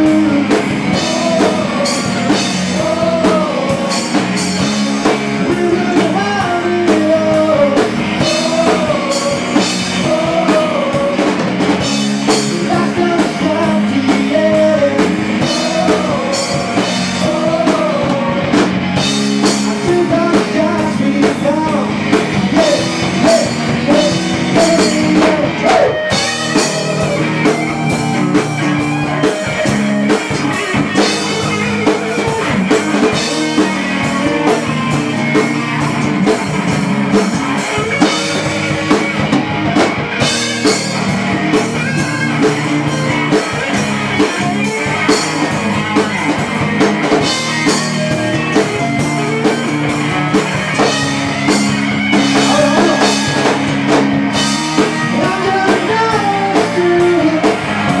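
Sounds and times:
man singing: 0.0s - 27.6s, 28.7s - 41.0s, 52.1s - 53.7s, 54.3s - 58.0s
drums: 0.0s - 58.0s
electric guitar: 0.0s - 58.0s.

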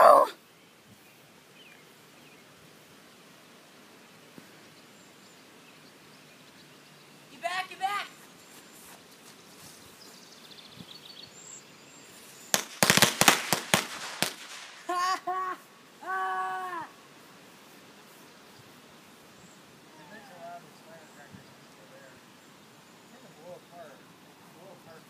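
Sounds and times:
firecrackers banging: 12.5s - 15.0s.

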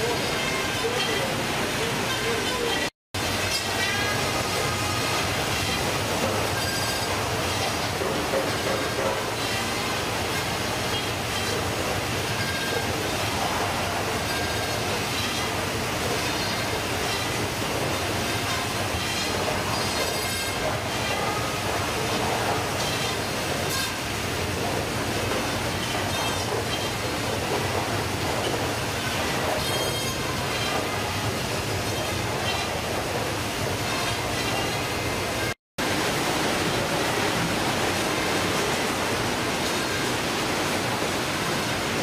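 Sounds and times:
high machine squeals: 0.0s - 11.6s, 12.2s - 24.0s, 25.7s - 27.2s, 28.4s - 33.0s, 33.7s - 35.6s
machine clatter and rumble: 3.2s - 42.0s.

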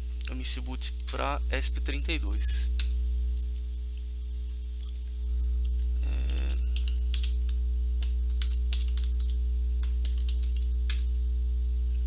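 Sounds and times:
low electrical hum: 0.0s - 12.0s
computer keyboard keys tapping: 6.6s - 11.1s.

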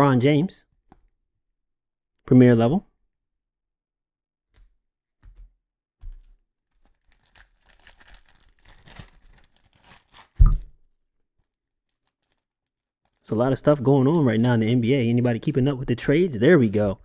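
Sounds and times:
foil pack tearing and crinkling: 6.6s - 10.4s, 11.4s - 14.6s.

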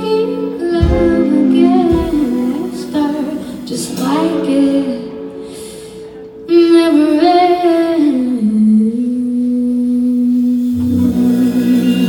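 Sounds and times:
woman singing long low note: 6.2s - 12.0s.

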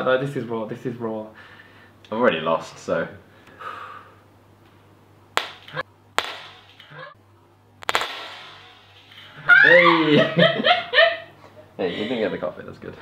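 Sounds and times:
loud laughter: 9.4s - 11.6s.

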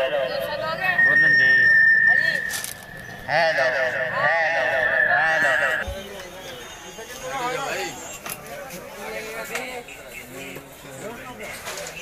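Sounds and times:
echoing voice from speaker: 0.0s - 5.8s
background noise: 0.0s - 12.0s
high feedback whistle: 0.3s - 5.8s.

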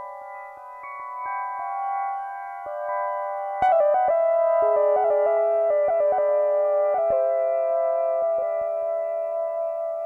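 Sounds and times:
electronic keyboard melody: 0.0s - 10.0s
low sustained keyboard note: 0.0s - 10.0s.

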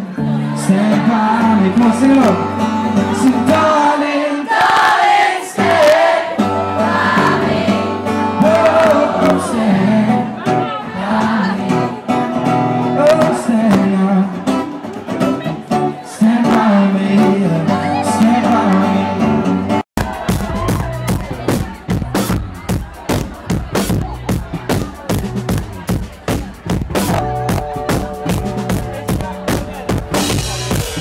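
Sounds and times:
strummed acoustic guitar: 0.0s - 4.1s, 5.5s - 31.0s
man singing: 0.0s - 4.5s, 8.2s - 11.9s, 12.8s - 14.7s, 15.8s - 19.7s.

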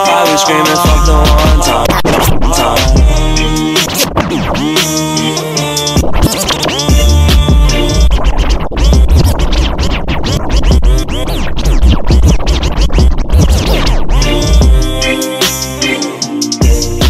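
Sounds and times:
heavy bass beat: 0.0s - 17.0s
record scratching: 0.0s - 17.0s.

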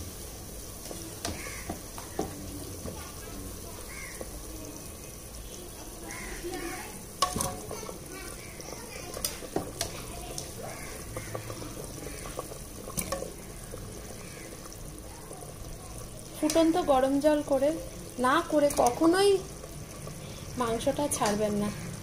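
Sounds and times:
curry boiling and bubbling: 0.0s - 22.0s.

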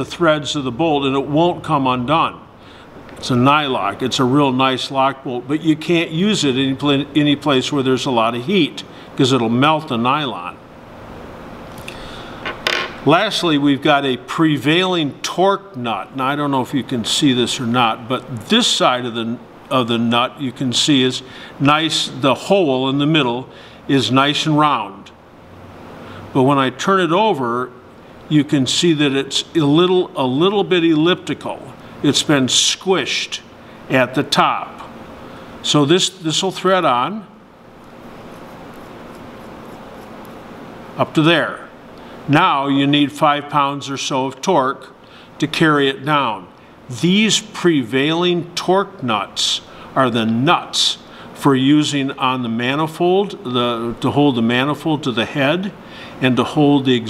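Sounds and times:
low steady background hiss: 0.0s - 57.0s.

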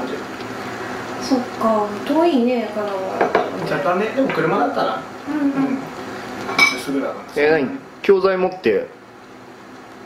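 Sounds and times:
people talking: 1.2s - 5.8s.

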